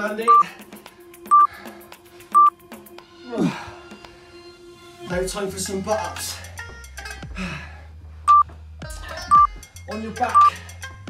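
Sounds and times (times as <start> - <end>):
timer beep: 2.3 - 2.5, 8.3 - 8.5, 9.3 - 9.6, 10.3 - 10.5.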